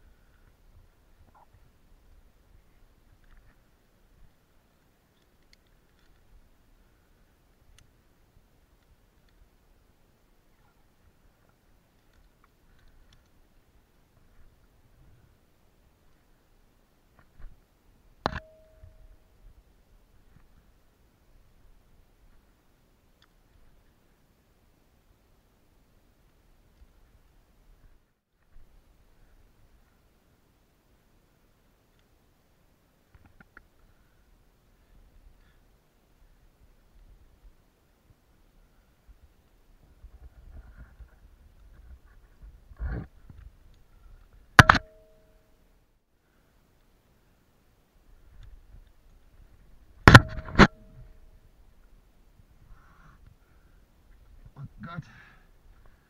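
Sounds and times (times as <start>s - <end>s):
metallic clink on rock: 18.2s - 19.0s.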